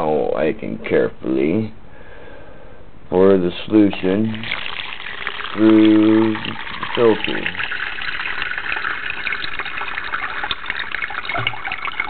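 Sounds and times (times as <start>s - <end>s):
liquid pouring and splashing: 3.9s - 12.0s.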